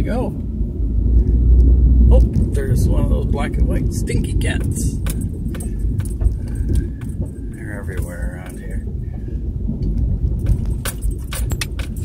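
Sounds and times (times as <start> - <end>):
vehicle rumble from inside cab: 0.0 - 12.0
sharp clicks and rattles: 4.1 - 9.2, 9.8 - 12.0.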